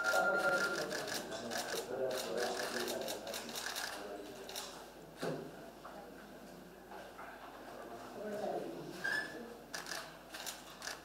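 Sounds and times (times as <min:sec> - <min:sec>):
steady beep: 0:00.0 - 0:00.8
murmur of voices: 0:00.0 - 0:11.0.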